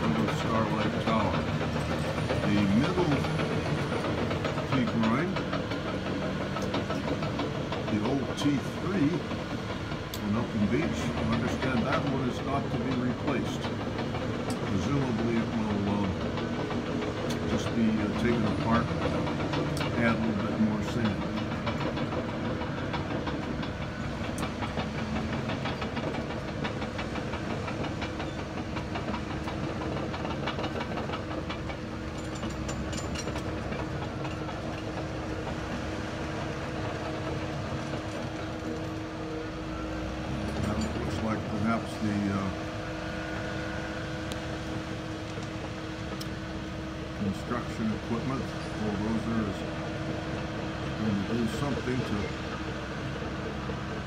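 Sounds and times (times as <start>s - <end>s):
steady mechanical hum: 0.0s - 54.0s.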